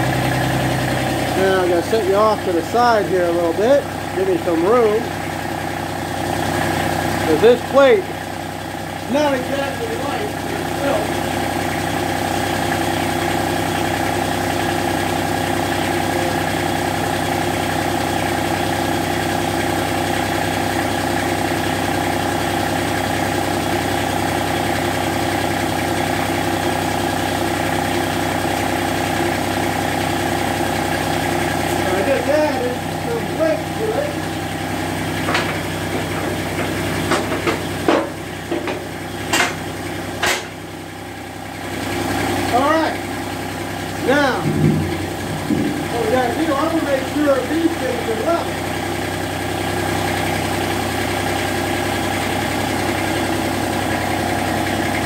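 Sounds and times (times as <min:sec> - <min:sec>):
tractor diesel engine idling: 0:00.0 - 0:55.0
sharp metal clanks: 0:37.1 - 0:39.6, 0:40.2 - 0:40.6.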